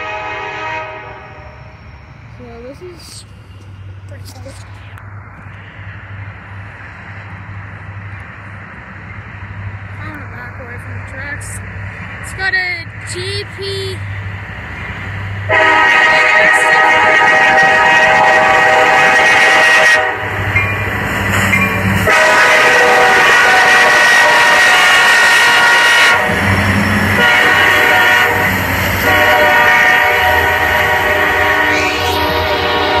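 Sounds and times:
locomotive air horn blasts: 0.0 - 1.7, 15.5 - 20.4, 22.0 - 33.0
diesel engines rumbling: 0.0 - 33.0
train rolling past: 0.0 - 33.0.

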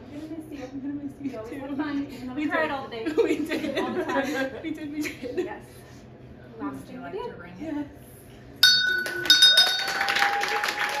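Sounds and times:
small bell ringing: 8.6 - 10.4
group clapping: 8.9 - 11.0
long cheer: 9.1 - 11.0.

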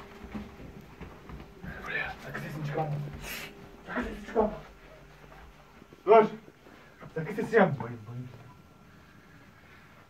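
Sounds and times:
shuffling footsteps on hard floor: 0.0 - 8.6.

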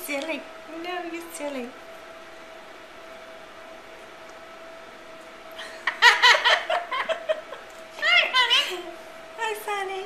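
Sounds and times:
woman laughing: 5.6 - 9.0.

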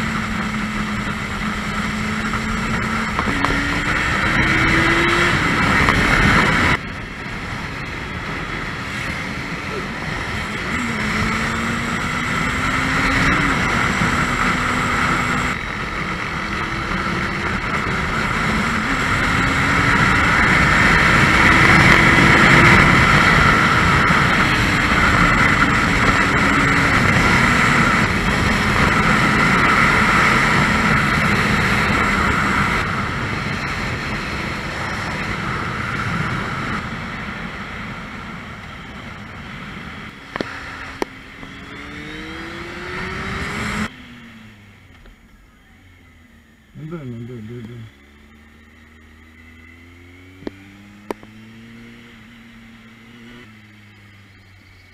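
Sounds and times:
wind rush on microphone: 0.0 - 43.9
motorcycle engine: 0.0 - 54.9.

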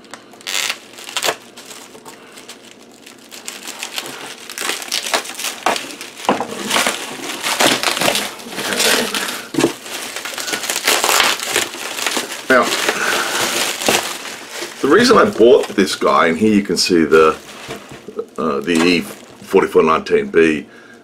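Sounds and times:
bubble wrap crinkling: 0.0 - 19.6.

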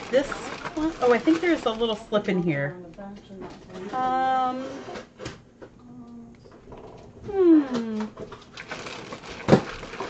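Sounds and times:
paper and cardboard rustling: 0.0 - 2.2, 8.3 - 10.0.

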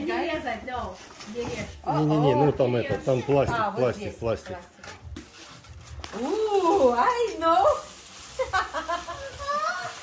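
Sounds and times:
surrounding conversation: 0.0 - 9.7
people talking at a table: 0.0 - 10.0.

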